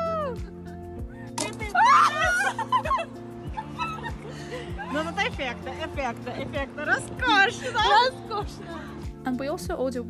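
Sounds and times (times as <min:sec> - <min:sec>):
background music with steady beat: 0:00.0 - 0:10.0
high excited voices: 0:01.6 - 0:05.3.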